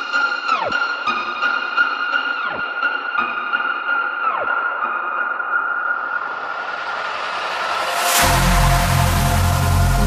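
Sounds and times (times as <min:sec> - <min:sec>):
rising noise sweep: 0:06.2 - 0:10.0.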